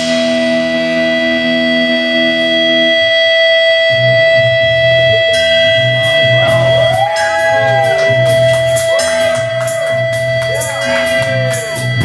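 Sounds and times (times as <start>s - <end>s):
deep bass line: 0.0s - 12.0s
electric guitar: 0.0s - 12.0s
live rock band music: 0.0s - 12.0s
held high note: 2.2s - 12.0s.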